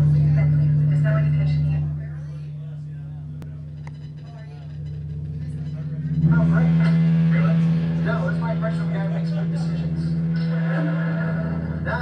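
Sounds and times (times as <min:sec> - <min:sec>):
amplifier electrical hum: 0:00.0 - 0:12.0
voices talking: 0:00.0 - 0:12.0.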